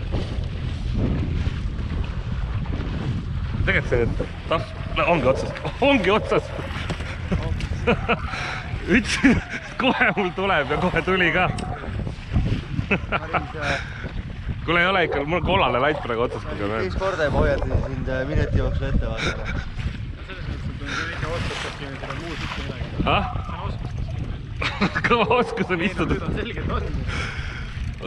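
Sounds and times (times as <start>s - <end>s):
low rumble: 0.0s - 20.9s
wind buffeting microphone: 0.0s - 28.0s
man talking: 3.7s - 7.6s, 14.7s - 19.5s.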